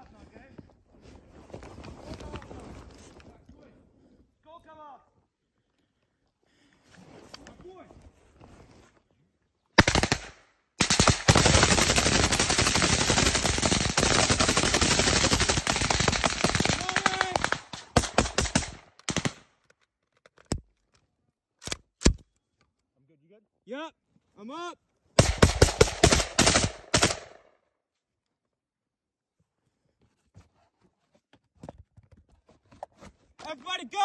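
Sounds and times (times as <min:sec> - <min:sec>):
automatic rifle fire: 0:09.8 - 0:19.5, 0:25.2 - 0:27.4.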